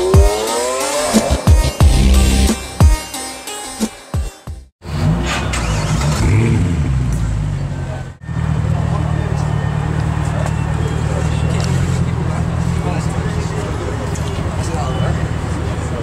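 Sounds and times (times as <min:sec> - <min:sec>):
people talking: 0:07.5 - 0:16.0.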